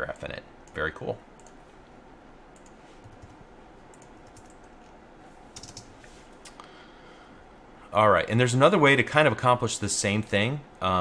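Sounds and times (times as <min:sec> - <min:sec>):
computer keyboard keystrokes: 0:02.6 - 0:04.8, 0:05.6 - 0:05.9.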